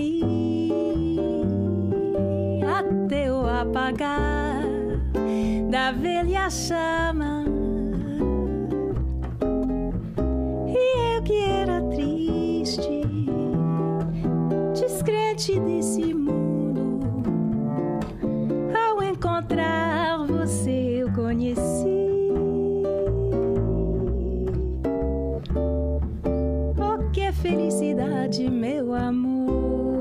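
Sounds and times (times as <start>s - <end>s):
pizzicato double bass: 0.0s - 30.0s
ukulele: 0.0s - 30.0s.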